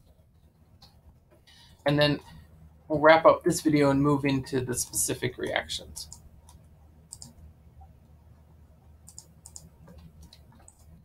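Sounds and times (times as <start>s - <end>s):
low room hum: 0.0s - 11.0s
computer mouse clicks: 6.0s - 7.5s, 9.0s - 11.0s.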